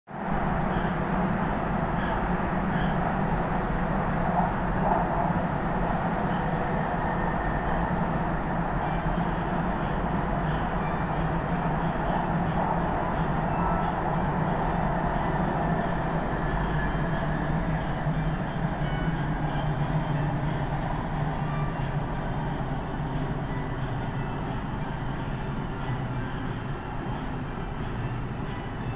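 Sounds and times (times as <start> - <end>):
train wheels rumbling on track: 0.1 - 28.9.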